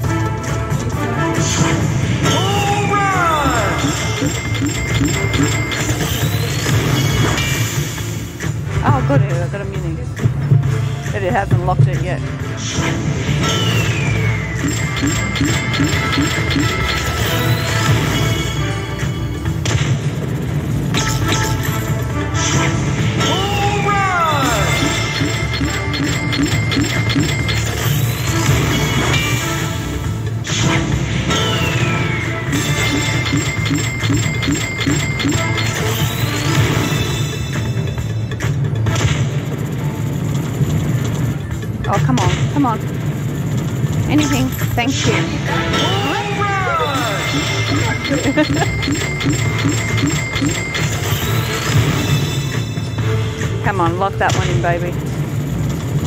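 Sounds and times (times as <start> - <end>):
slot machine bonus music: 0.0 - 56.0.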